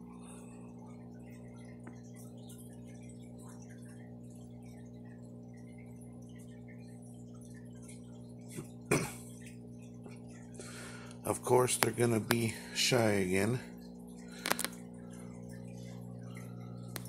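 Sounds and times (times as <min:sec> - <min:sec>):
electrical hum of aquarium equipment: 0:00.0 - 0:17.0
water ticks and drips: 0:00.0 - 0:17.0.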